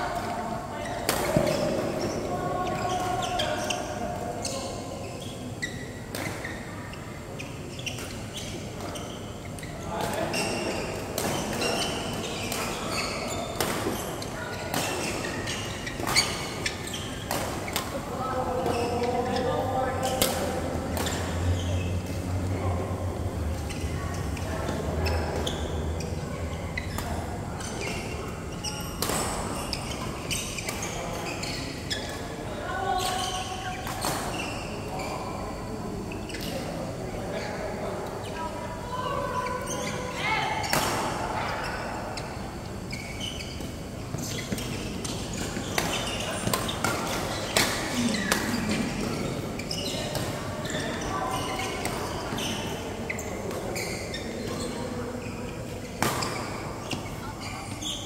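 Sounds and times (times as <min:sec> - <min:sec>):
players' voices: 0:00.0 - 0:42.9, 0:43.8 - 0:58.0.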